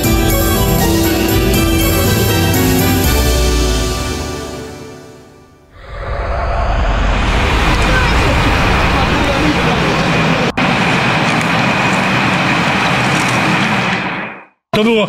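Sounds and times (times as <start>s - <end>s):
road noise: 5.8s - 14.1s.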